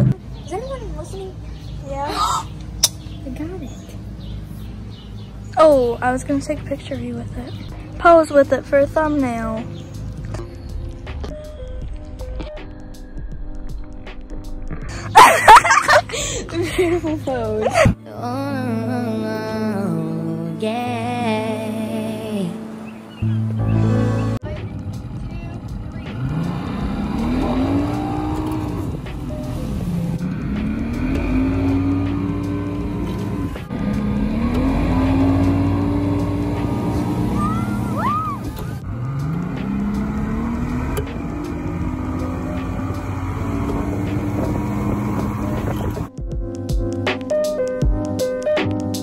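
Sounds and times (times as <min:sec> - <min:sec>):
outboard motor revving: 0:25.0 - 0:46.1.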